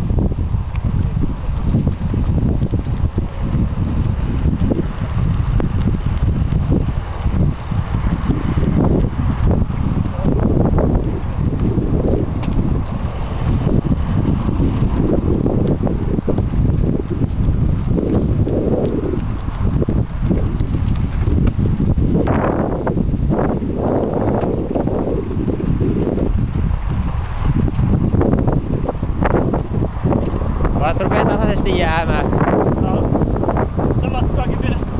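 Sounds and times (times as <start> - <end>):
gusty wind buffeting microphone: 0.0 - 34.9.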